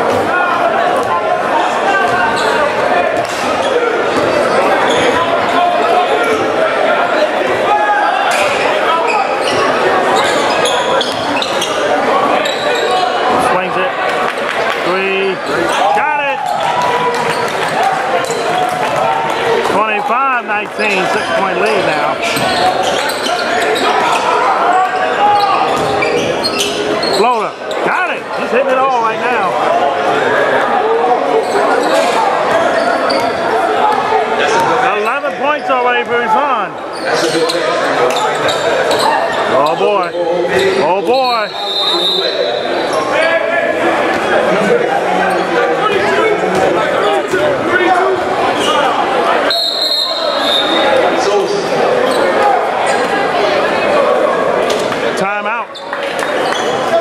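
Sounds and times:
voices of players and spectators: 0.0s - 57.0s
ball bouncing on hardwood court: 25.8s - 26.0s.

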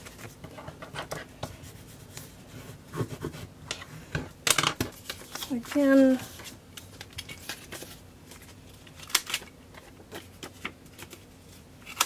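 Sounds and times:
paper rustling and scraping: 4.9s - 12.0s.

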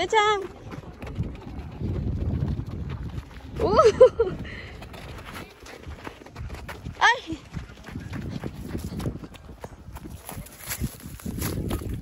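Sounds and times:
footsteps on dry dirt: 0.0s - 12.0s.

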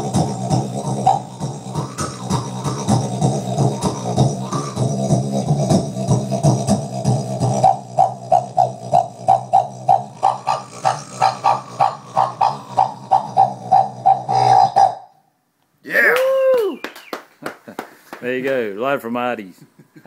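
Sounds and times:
pulsed mouth drone through bass amp: 0.0s - 15.1s.

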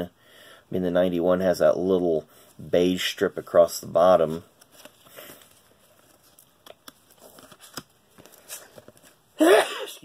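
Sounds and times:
cardboard cards rustling: 2.8s - 9.4s.

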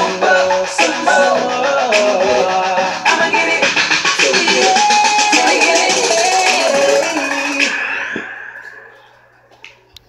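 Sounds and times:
hip-hop track: 0.0s - 9.9s.

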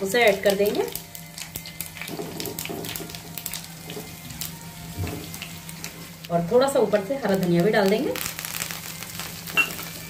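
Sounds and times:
oil sizzling in a pan: 0.0s - 10.0s.

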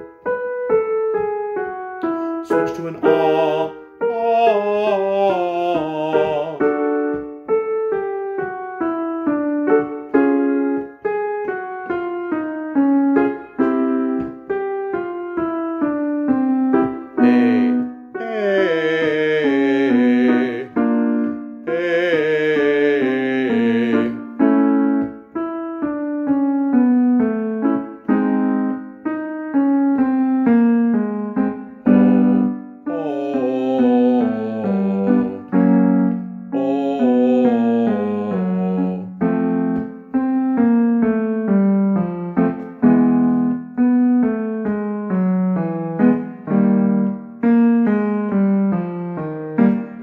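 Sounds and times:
piano playing warm-up patterns: 0.0s - 50.0s
man singing vocal exercise: 2.0s - 7.1s, 17.2s - 21.0s, 21.6s - 24.4s, 31.9s - 35.7s, 36.5s - 39.2s.

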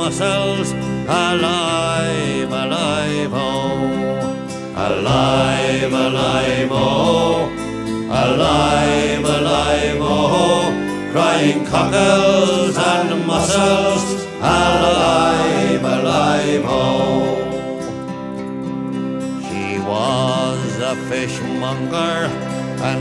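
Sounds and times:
guitar accompaniment: 0.0s - 23.0s
voices singing folk ballad: 0.0s - 23.0s.

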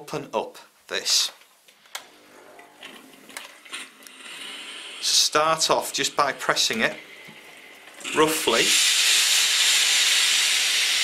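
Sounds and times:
steam iron hissing: 3.7s - 7.2s, 8.1s - 11.0s.

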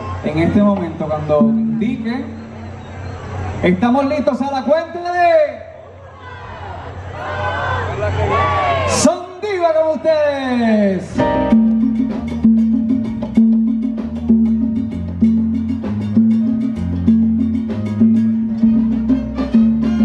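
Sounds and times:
congas: 0.0s - 4.3s, 10.7s - 20.0s
salsa band playing: 0.0s - 4.4s, 11.0s - 20.0s
keyboard: 0.0s - 5.0s, 11.1s - 20.0s
repeating bass figure: 0.4s - 3.9s, 11.1s - 20.0s
drum kit: 11.2s - 20.0s.

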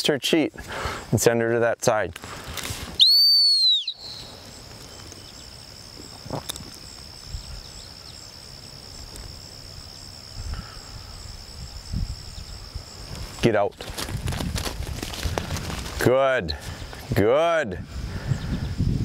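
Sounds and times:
dog-training whistle blast: 3.0s - 4.2s
high-pitched insect drone: 3.0s - 13.3s.

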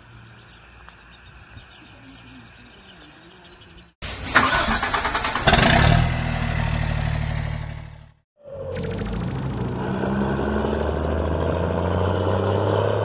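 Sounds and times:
bird chirps: 0.0s - 4.0s
diesel engine starting and running: 4.0s - 13.0s.

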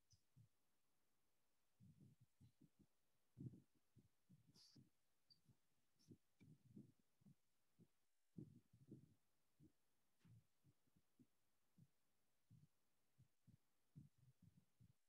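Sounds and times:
marker writing on whiteboard: 4.3s - 6.9s.

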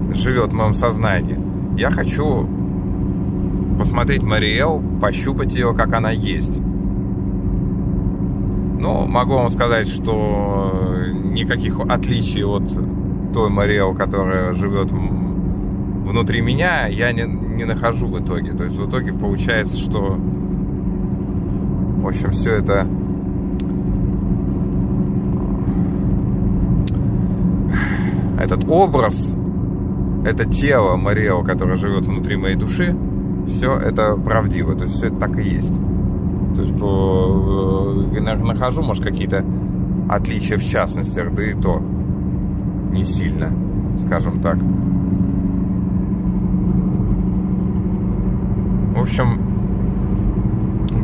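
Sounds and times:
road and engine rumble: 0.0s - 51.0s
faint even hum: 23.5s - 51.0s.

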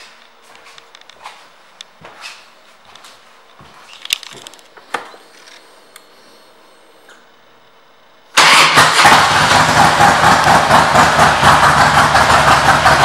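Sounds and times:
motorcycle engine starting and running: 8.3s - 13.0s.

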